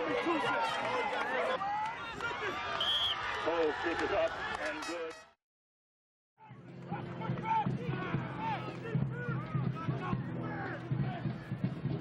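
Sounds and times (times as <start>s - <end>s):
outdoor crowd background noise: 0.0s - 5.4s, 6.4s - 12.0s
people talking and calling out: 6.4s - 11.9s.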